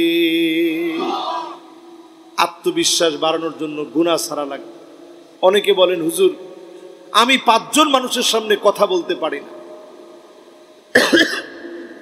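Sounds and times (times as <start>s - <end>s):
man coughing: 10.9s - 11.5s.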